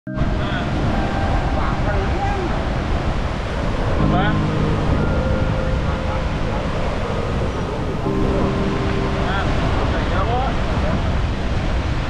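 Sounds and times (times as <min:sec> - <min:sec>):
wind buffeting microphone: 0:00.1 - 0:12.0
surf washing over rocks: 0:00.2 - 0:12.0.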